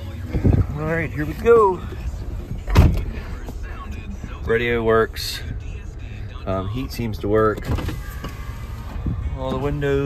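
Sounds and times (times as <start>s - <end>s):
low cabin rumble: 0.0s - 10.0s
car door shutting: 2.7s - 3.2s, 7.5s - 8.6s.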